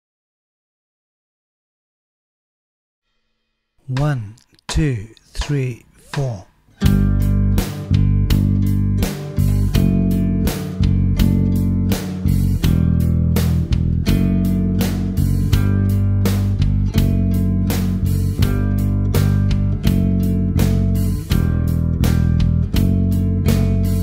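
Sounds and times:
low accompaniment: 0:03.9 - 0:24.0
guitar playing slow notes: 0:05.9 - 0:24.0.

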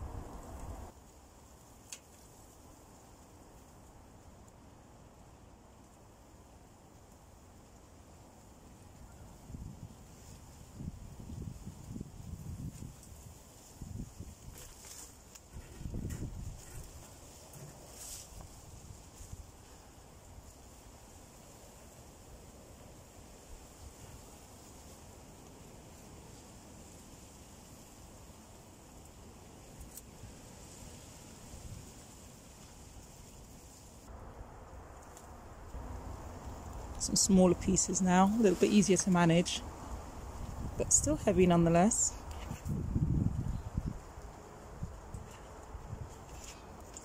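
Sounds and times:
outdoor wind noise: 0:00.0 - 0:47.0.

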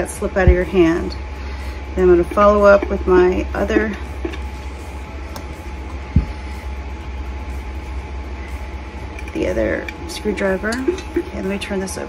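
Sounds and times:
low room hum: 0:00.0 - 0:12.0
soft low thump: 0:06.1 - 0:06.3.

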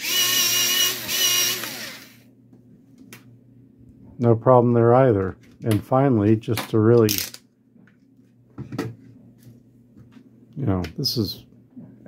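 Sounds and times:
electric pencil sharpener whirring: 0:00.0 - 0:02.2.

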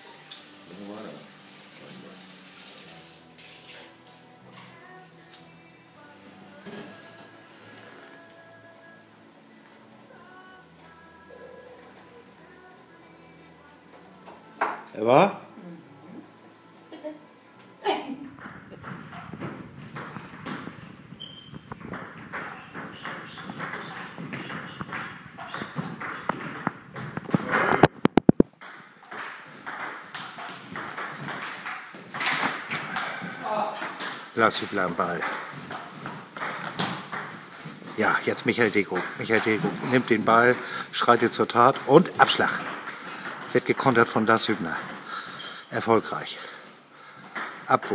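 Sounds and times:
quiet music with long held notes: 0:00.0 - 0:18.4.

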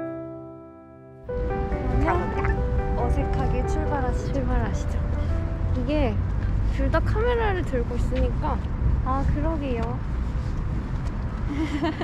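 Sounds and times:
brief voice: 0:02.0 - 0:02.6.

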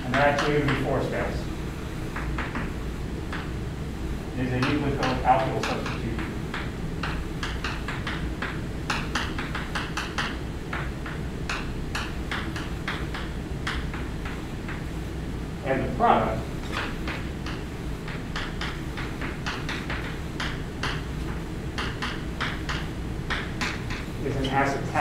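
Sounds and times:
low room hum: 0:00.0 - 0:25.0.

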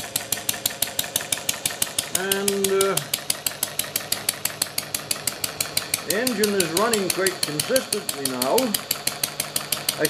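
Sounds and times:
small gasoline engine clicking: 0:00.0 - 0:10.0.

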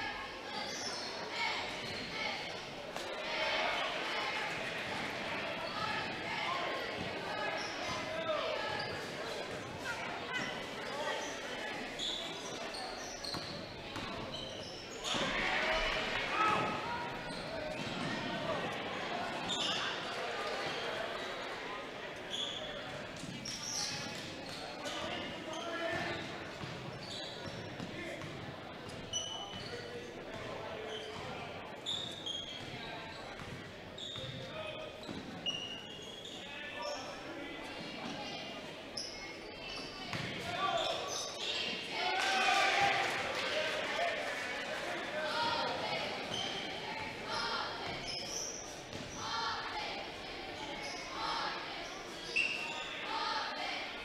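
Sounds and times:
short high squeaks: 0:52.2 - 0:53.0.

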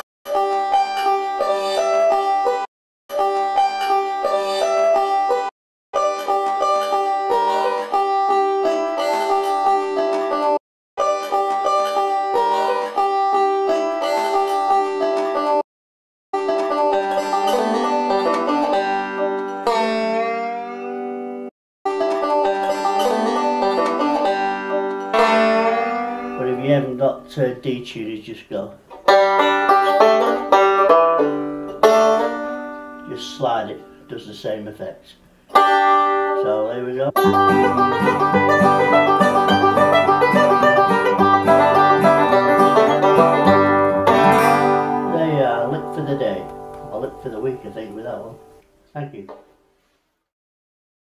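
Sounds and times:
banjo picking fast run: 0:00.0 - 0:15.6, 0:16.4 - 0:20.4, 0:21.9 - 0:27.5, 0:29.0 - 0:33.6, 0:35.5 - 0:36.6, 0:37.2 - 0:48.0.

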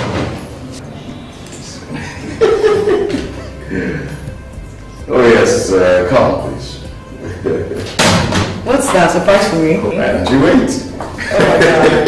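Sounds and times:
door slam: 0:00.0 - 0:00.5, 0:07.9 - 0:08.6
voices: 0:08.6 - 0:12.0.

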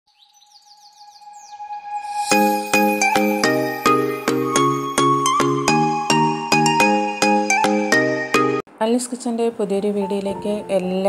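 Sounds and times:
falling chirps: 0:00.1 - 0:05.5.

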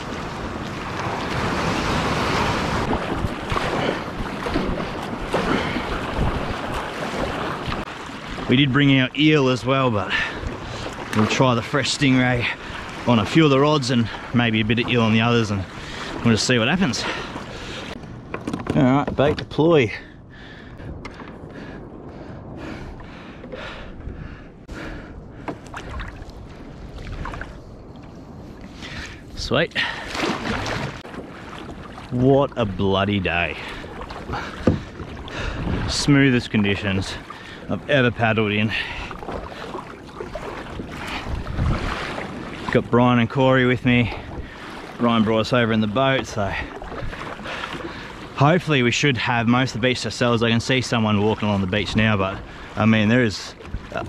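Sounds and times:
paddle splashes: 0:00.0 - 0:54.0
sea water wash: 0:00.0 - 0:54.0
wind buffeting microphone: 0:00.0 - 0:54.0
light knocks on hull: 0:34.1 - 0:35.1.

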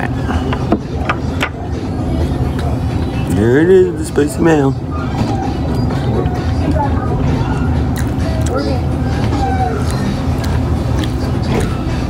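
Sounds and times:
distant voices: 0:00.0 - 0:12.0
faint music: 0:00.0 - 0:12.0
steady low hum: 0:00.0 - 0:12.0.

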